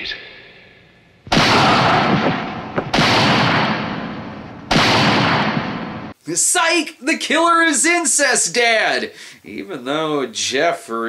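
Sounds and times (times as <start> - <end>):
echoing handgun shots: 1.3 - 6.2.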